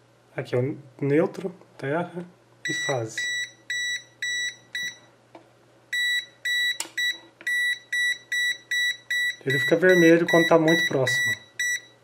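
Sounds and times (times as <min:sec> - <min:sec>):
voltage detector beeping: 0:02.7 - 0:05.1, 0:06.0 - 0:12.0.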